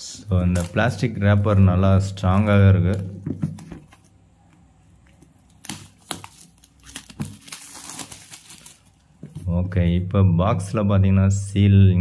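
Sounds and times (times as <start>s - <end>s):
plastic wrapper crinkling: 0.3s - 9.5s.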